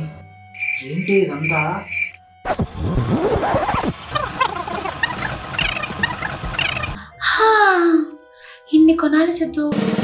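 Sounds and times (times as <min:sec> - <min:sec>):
cricket chirping: 0:00.5 - 0:02.2.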